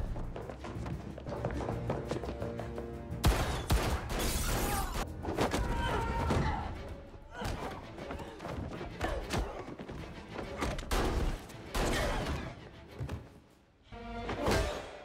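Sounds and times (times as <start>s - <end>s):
film music score: 0.0s - 15.0s.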